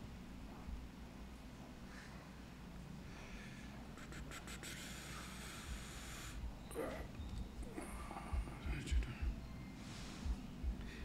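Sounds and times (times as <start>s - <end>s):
soft steady hiss: 0.0s - 11.0s.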